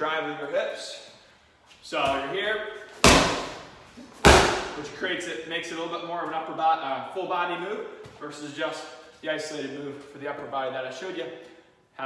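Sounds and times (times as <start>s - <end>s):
medicine ball slamming on rubber floor: 3.0s - 4.9s.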